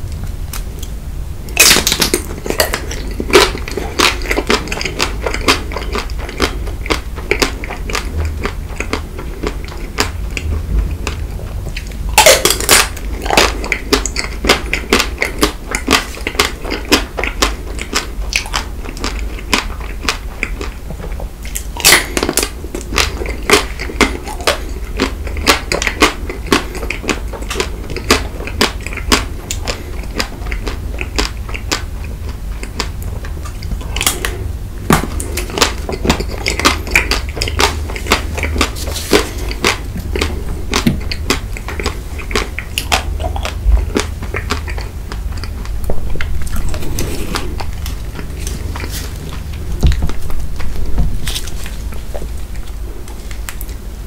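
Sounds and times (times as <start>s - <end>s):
low steady hum: 0.0s - 54.0s
soft wet chewing: 0.5s - 54.0s
chocolate shell crunching: 1.5s - 11.2s.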